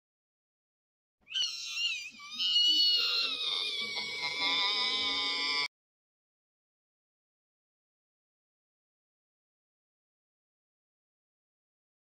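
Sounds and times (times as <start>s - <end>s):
shrill wailing cry: 1.3s - 5.7s.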